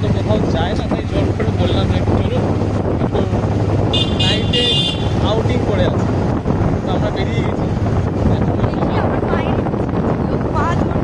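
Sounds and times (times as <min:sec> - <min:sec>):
traffic: 0:00.0 - 0:11.0
wind on microphone: 0:00.0 - 0:11.0
vehicle horn: 0:03.9 - 0:05.3.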